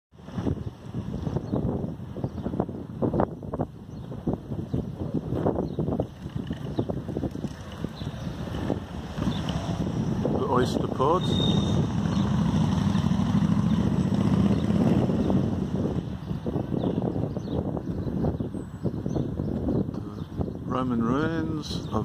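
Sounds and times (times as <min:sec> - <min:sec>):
wind buffeting microphone: 0:00.1 - 0:22.0.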